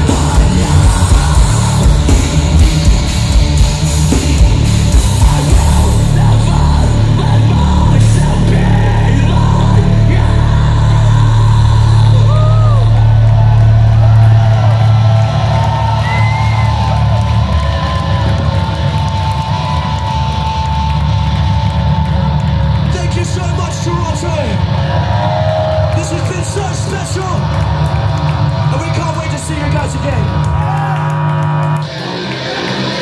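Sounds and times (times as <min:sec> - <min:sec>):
crowd voices: 0:00.0 - 0:33.0
low bass drone: 0:00.0 - 0:33.0
metal band playing live: 0:00.0 - 0:33.0.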